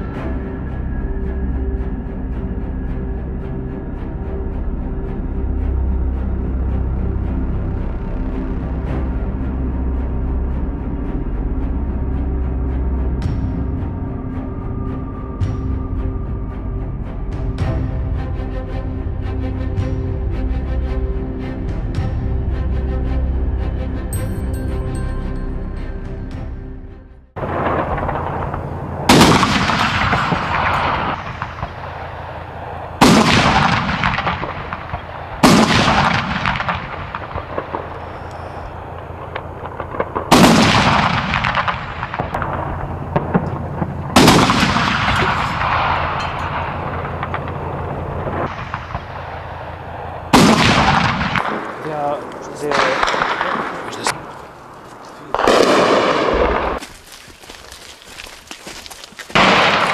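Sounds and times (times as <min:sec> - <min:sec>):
steady low hum: 0:25.2 - 0:33.0, 0:36.5 - 0:52.6
gunfire with rolling echo: 0:27.4 - 0:54.3, 0:55.3 - 0:56.8, 0:59.3 - 0:59.9.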